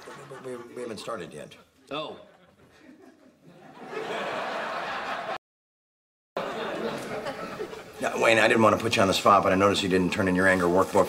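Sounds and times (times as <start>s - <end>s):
studio audience laughter: 0.0s - 1.0s, 2.3s - 5.4s, 6.4s - 8.0s.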